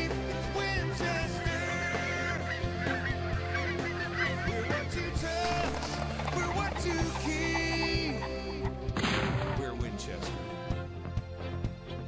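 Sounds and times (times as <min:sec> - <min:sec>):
geese honking: 0:00.2 - 0:09.0.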